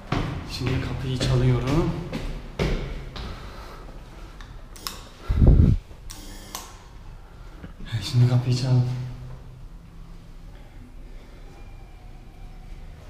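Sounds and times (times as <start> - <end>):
knocks and footsteps in stairwell: 0.0 - 4.4.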